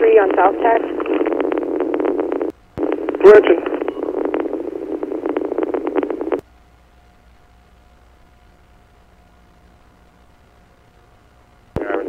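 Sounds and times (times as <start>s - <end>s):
radio click: 0.0s - 6.4s, 11.8s - 12.0s
faint radio hiss: 0.0s - 12.0s
garbled police radio transmission: 2.8s - 6.3s, 11.8s - 12.0s.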